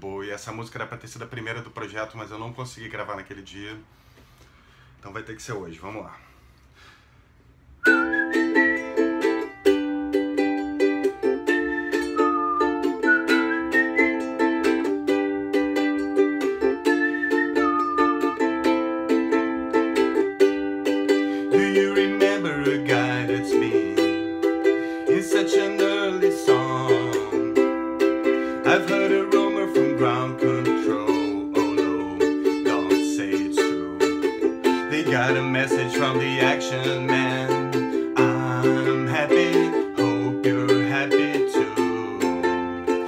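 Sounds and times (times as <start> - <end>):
ukulele strumming chords: 7.8 - 43.0
whistled melody: 7.8 - 43.0.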